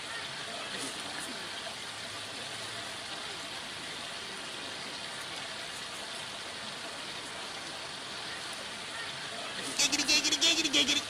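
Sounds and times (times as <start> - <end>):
steady hiss of background noise: 0.0 - 11.0.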